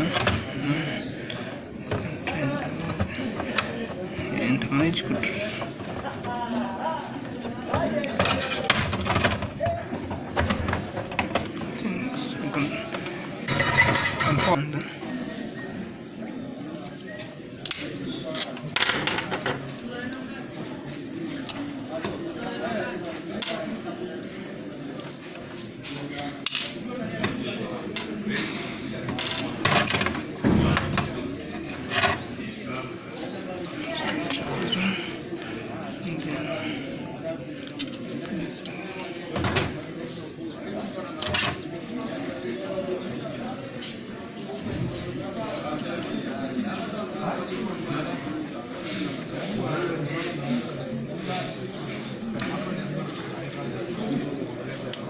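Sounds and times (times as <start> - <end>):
indistinct talking: 0.0 - 55.0.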